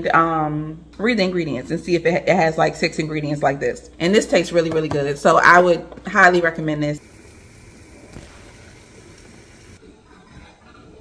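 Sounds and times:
gas burner hissing: 7.0s - 9.8s.

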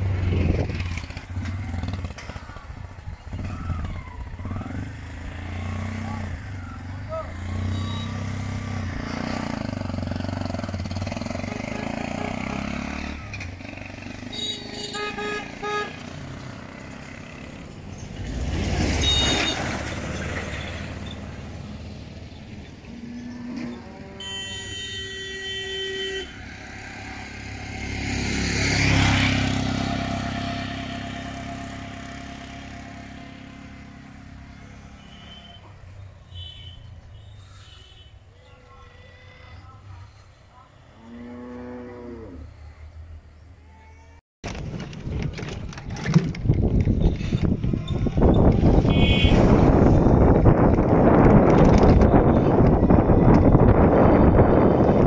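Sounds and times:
vehicles passing: 0.0s - 55.0s
vehicle horn: 7.6s - 8.4s, 11.4s - 12.9s, 14.2s - 16.2s, 19.0s - 19.8s, 24.1s - 26.6s, 34.8s - 38.8s, 48.7s - 49.6s.

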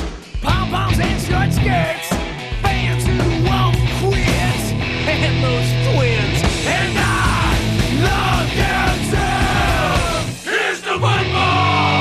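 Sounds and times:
punk rock song with shouted vocals: 0.0s - 12.0s.

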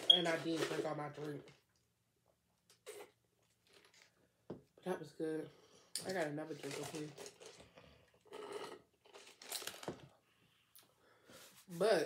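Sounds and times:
sipping through a straw: 2.8s - 3.2s.

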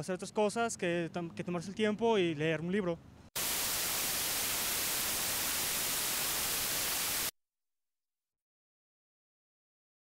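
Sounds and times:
television static hiss: 3.4s - 7.3s.

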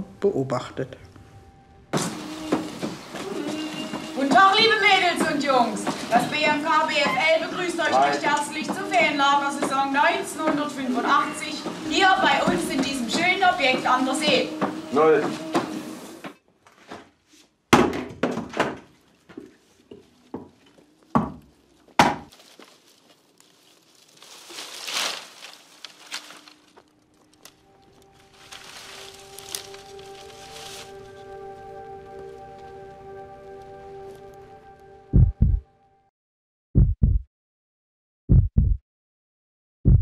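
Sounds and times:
hatchet chopping wood: 22.0s - 22.3s
heartbeat double thumps: 35.1s - 35.7s, 36.8s - 37.3s, 38.3s - 38.8s.

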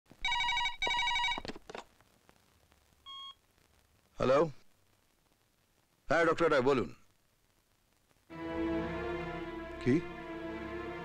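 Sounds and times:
short phone beep: 3.1s - 3.4s.

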